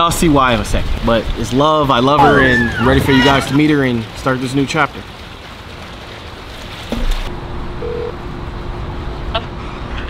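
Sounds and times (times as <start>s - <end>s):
outdoor background noise: 0.0s - 10.0s
faint phone tone: 7.8s - 8.2s.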